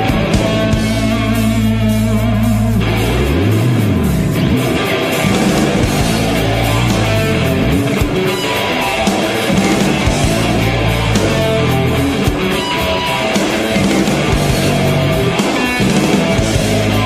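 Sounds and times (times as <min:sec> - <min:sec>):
bass guitar: 0:00.0 - 0:17.0
drums playing: 0:00.0 - 0:17.0
electric guitar: 0:00.0 - 0:17.0.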